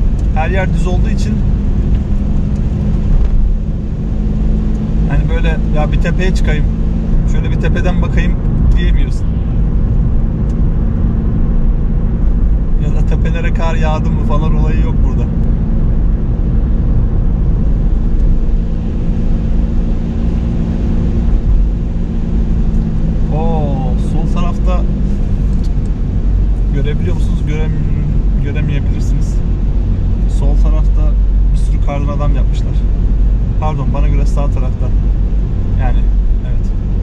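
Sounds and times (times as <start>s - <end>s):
car engine and tyre rumble: 0.0s - 37.0s.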